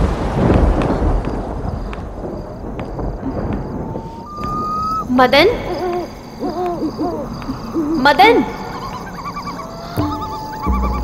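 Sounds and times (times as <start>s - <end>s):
owl hooting: 3.8s - 11.0s.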